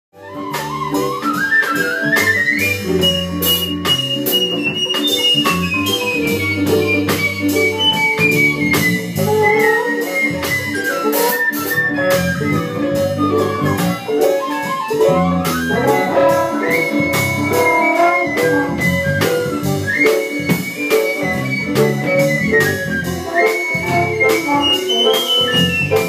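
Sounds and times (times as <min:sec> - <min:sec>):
electronic keyboard chords: 0:00.2 - 0:26.0
high woodwind line: 0:00.2 - 0:26.0.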